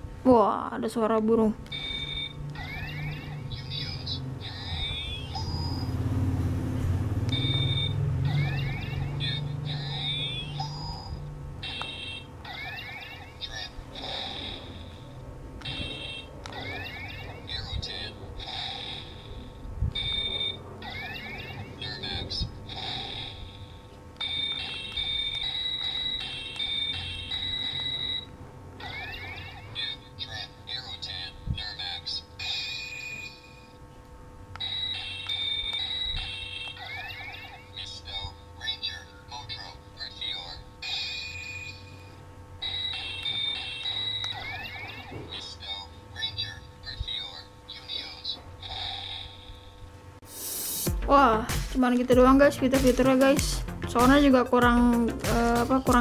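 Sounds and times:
toy electronic beeps and tunes: 0:01.7 - 0:06.0, 0:07.3 - 0:33.8, 0:34.6 - 0:49.8.

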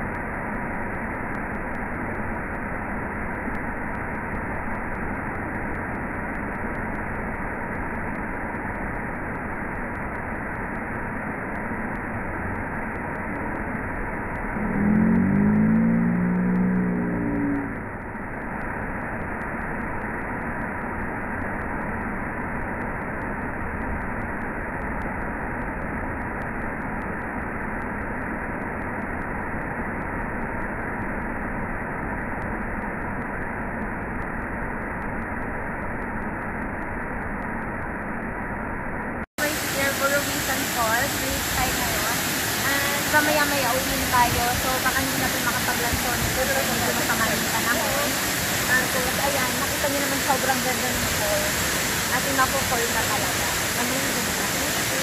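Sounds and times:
waterfall rushing: 0:39.4 - 0:55.0.

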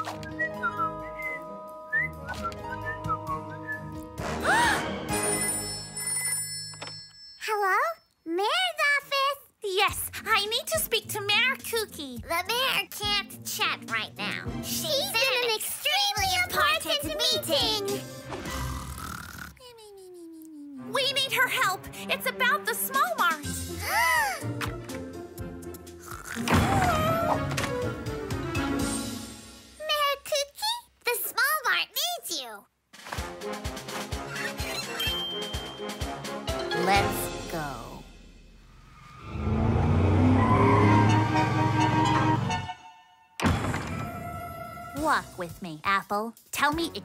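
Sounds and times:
falling cartoon whimper tone: 0:19.4 - 0:20.9, 0:26.3 - 0:27.5
cartoon thunk: 0:26.4 - 0:27.9, 0:43.4 - 0:44.2
background music with held note: 0:35.0 - 0:38.0.

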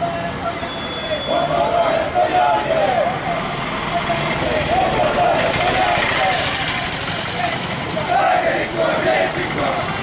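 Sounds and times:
road traffic: 0:00.0 - 0:10.0
men shouting slogans: 0:01.2 - 0:10.0.

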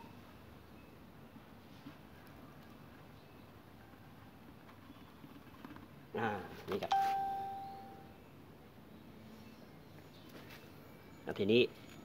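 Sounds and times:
clear ding: 0:06.9 - 0:08.1.

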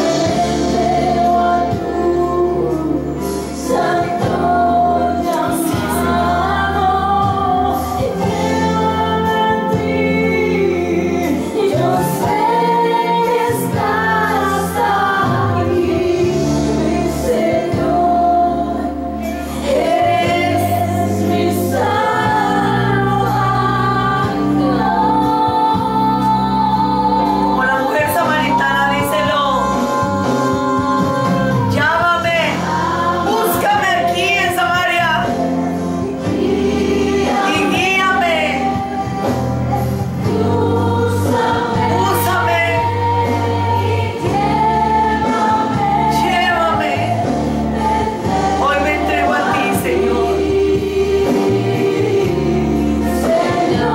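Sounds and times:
choir singing worship song: 0:00.0 - 0:53.9
steady musical accompaniment: 0:00.0 - 0:53.9.

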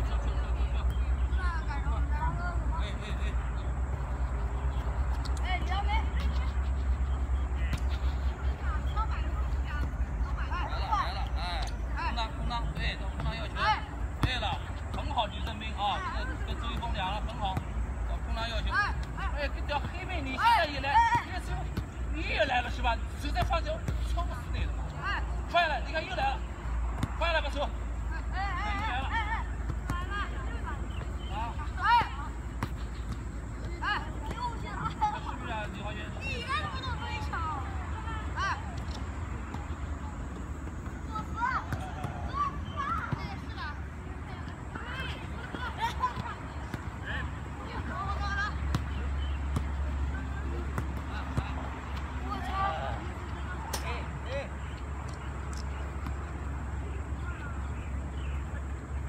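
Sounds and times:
young voices calling and shouting: 0:00.0 - 0:59.0.

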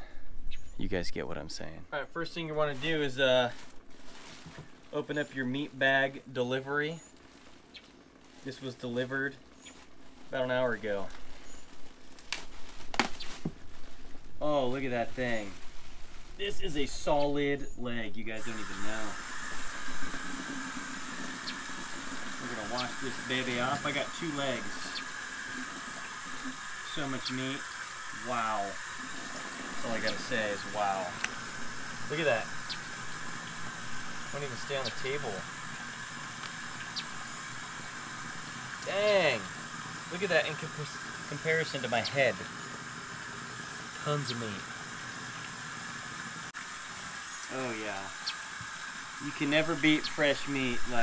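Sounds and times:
plastic bag rustling: 0:02.4 - 0:17.2
tap water running into sink: 0:18.4 - 0:51.0.

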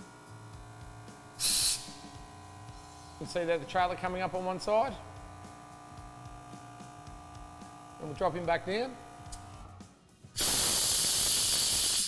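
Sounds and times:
air suspension venting hiss: 0:01.4 - 0:02.2, 0:10.4 - 0:12.0.

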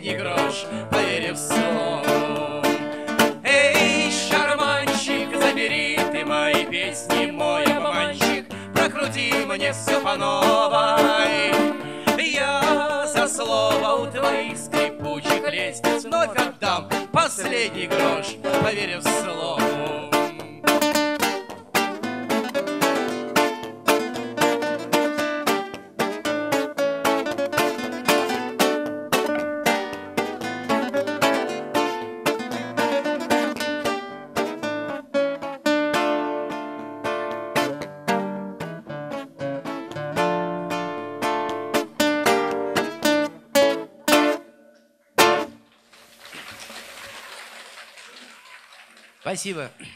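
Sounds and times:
acoustic guitar playing: 0:00.0 - 0:46.2
applause: 0:45.8 - 0:49.8.

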